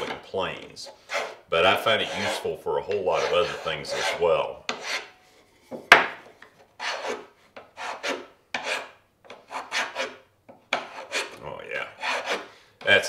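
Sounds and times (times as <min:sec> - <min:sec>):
float shaving wood: 0:01.1 - 0:05.0.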